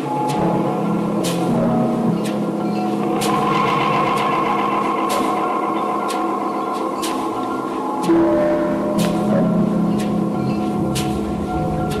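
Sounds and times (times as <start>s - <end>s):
sustained droning tones: 0.0s - 12.0s
sharp percussive hit: 2.8s - 9.4s.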